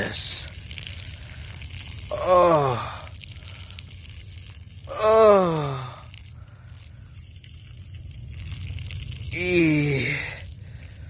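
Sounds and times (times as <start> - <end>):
steady low hum: 0.0 - 11.0
urine splashing onto soil: 0.0 - 11.0.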